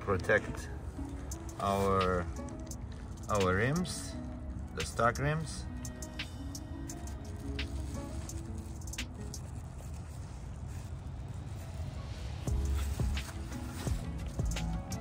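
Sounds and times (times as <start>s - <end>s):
background music: 0.0s - 15.0s.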